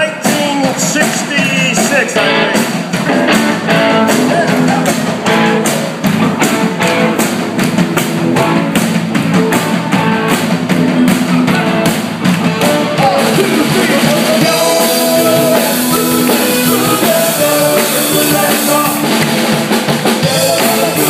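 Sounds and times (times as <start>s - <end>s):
live rock band playing: 0.0s - 21.0s
steady drum beat: 0.0s - 21.0s.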